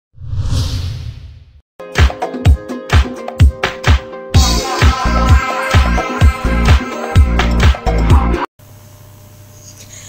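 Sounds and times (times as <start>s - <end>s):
whoosh: 0.2s - 1.6s
dance music with thumping bass: 2.9s - 8.5s.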